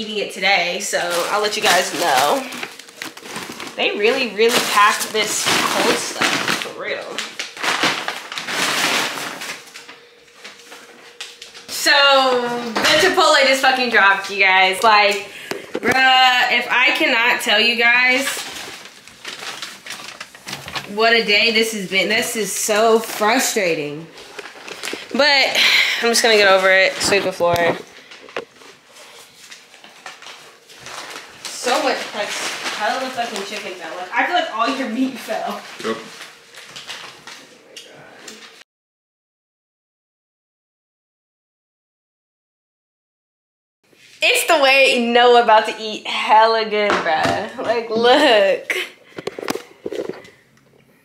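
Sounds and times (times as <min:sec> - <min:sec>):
paper bag rustling and crinkling: 0:00.1 - 0:37.7, 0:49.2 - 0:50.5.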